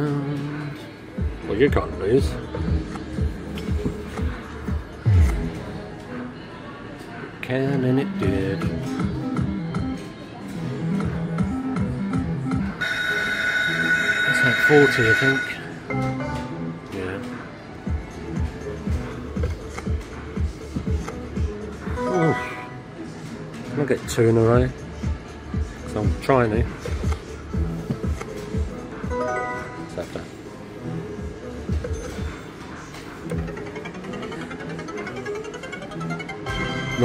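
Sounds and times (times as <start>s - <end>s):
electronic slot machine music: 11.6s - 16.8s, 21.9s - 23.0s, 28.3s - 30.3s, 33.3s - 37.0s
fruit machine chimes: 12.8s - 15.8s.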